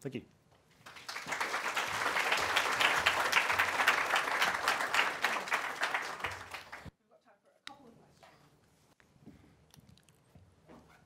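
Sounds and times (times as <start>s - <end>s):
audience applauding: 0.8s - 6.9s.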